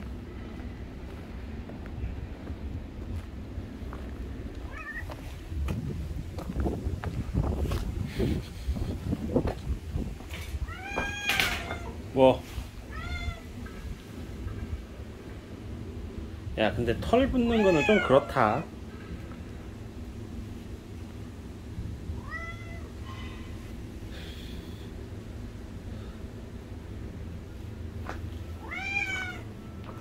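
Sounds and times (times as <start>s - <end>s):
cat meowing: 4.6s - 5.1s, 10.6s - 12.0s, 12.9s - 13.5s, 17.4s - 18.7s, 22.2s - 22.9s, 28.6s - 29.5s.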